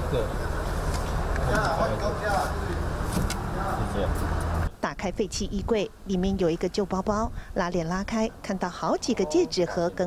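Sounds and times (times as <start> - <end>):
truck engine idling: 0.0 - 4.7.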